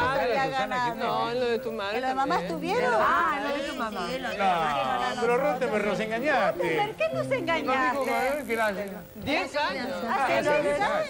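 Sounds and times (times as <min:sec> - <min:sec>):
several people chattering: 0:00.0 - 0:11.0.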